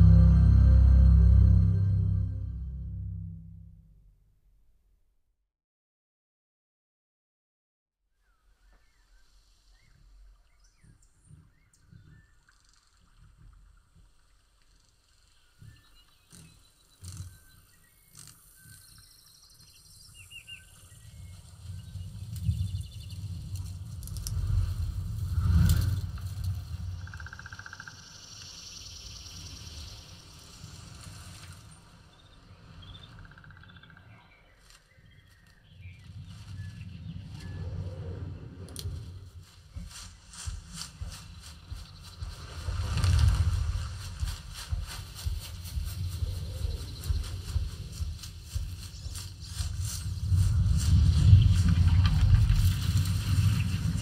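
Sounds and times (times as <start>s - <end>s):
loud sweep: 0.0s - 4.0s
deep bass swells: 0.0s - 4.1s
birds chirping: 44.2s - 54.0s.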